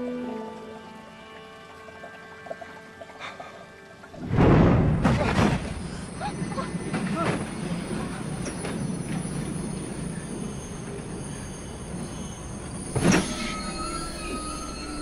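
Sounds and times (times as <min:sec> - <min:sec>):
film score music: 0:00.0 - 0:15.0
train carriage rumbling jolt: 0:04.2 - 0:14.7.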